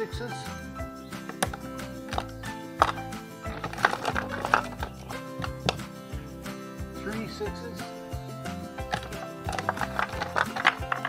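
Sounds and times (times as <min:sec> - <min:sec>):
background music: 0:00.0 - 0:11.0
wooden dice knocking in plastic basket: 0:01.2 - 0:05.9, 0:08.8 - 0:11.0.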